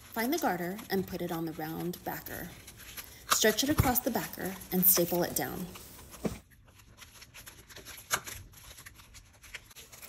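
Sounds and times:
ribbon rustling: 0.0s - 10.0s.

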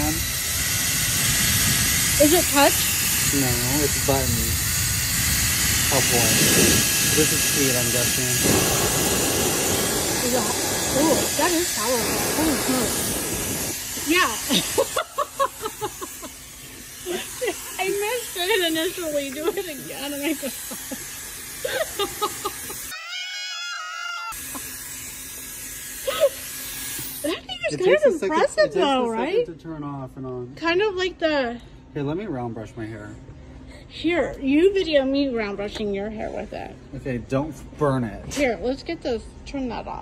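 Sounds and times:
hair dryer running: 0.0s - 23.0s, 24.3s - 28.0s.

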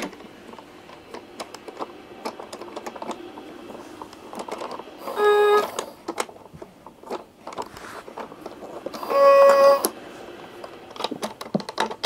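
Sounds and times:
electronic toy piano note: 5.0s - 5.8s, 9.0s - 10.0s.

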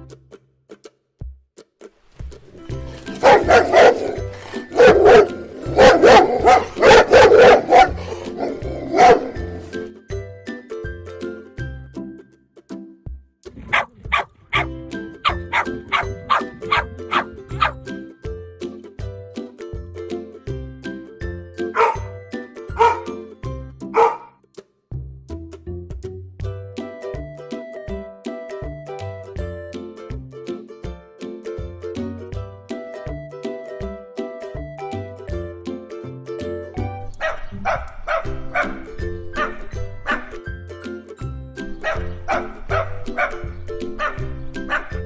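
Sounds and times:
background music with steady beat: 0.0s - 45.0s
dog barking: 3.2s - 9.4s, 13.7s - 17.8s, 21.8s - 22.1s, 22.8s - 23.1s, 23.9s - 24.3s, 37.2s - 38.8s, 39.4s - 40.4s, 41.8s - 43.4s, 44.0s - 45.0s.

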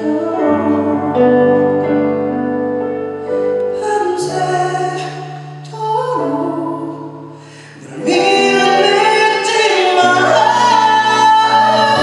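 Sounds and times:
man singing ballad: 0.0s - 1.7s, 3.7s - 7.0s, 7.7s - 12.0s
backing music: 5.3s - 12.0s.

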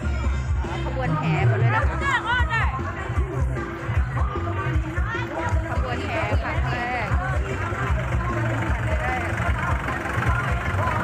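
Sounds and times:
tractor diesel engine running: 0.0s - 11.0s
people talking: 0.2s - 11.0s.

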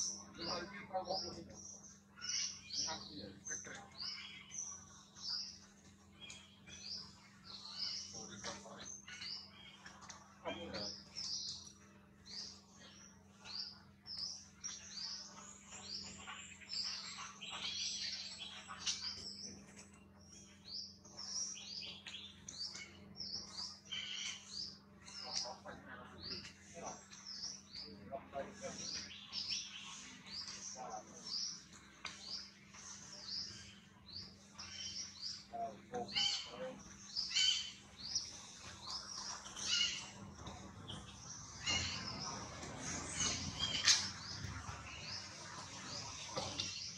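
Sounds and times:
small birds chirping: 0.0s - 46.9s.

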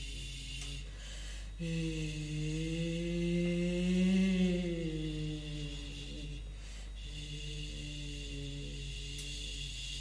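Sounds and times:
person humming low tone: 0.0s - 10.0s.

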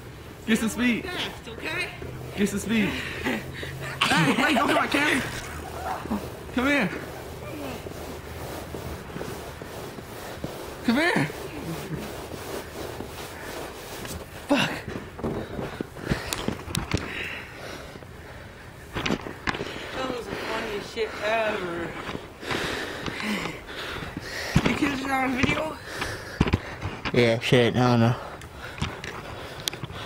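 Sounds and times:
bicycle crunching through snow: 0.4s - 25.9s.

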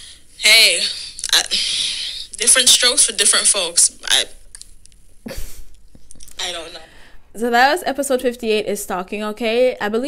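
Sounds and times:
person speaking: 0.4s - 4.5s, 6.2s - 6.9s.

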